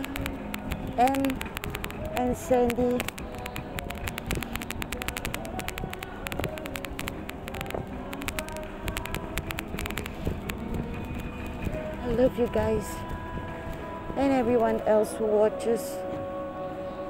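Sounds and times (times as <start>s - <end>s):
rapid clicking and rattling: 0.0s - 13.1s
faint background music: 0.0s - 17.0s.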